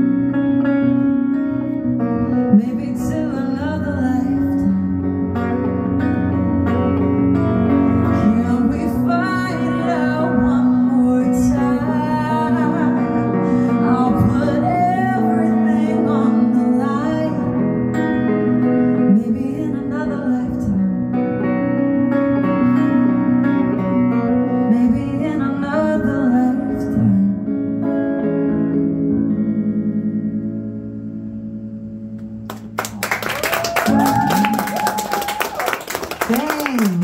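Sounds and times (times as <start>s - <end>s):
electric guitar: 0.0s - 37.0s
woman singing: 2.0s - 5.5s, 7.9s - 21.5s, 22.6s - 27.6s
audience applause and cheer: 32.4s - 37.0s.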